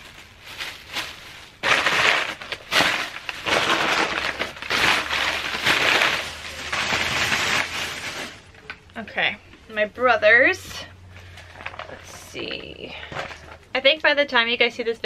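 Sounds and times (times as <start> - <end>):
plastic bag crinkling: 0.0 - 8.8, 11.1 - 13.7.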